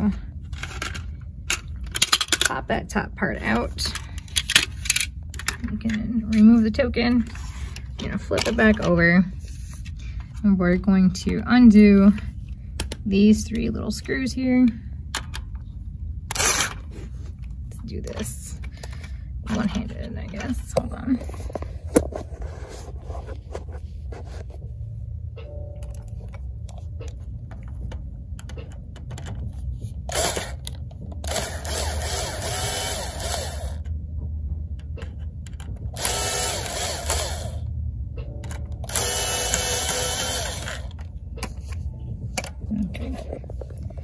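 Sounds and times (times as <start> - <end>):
cordless drill whirring: 30.1 - 30.6, 31.3 - 33.8, 36.0 - 37.6, 38.9 - 40.9.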